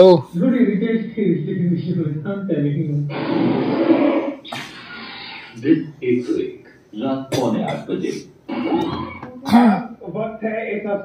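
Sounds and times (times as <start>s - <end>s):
person coughing: 7.3s - 8.2s, 9.4s - 9.9s.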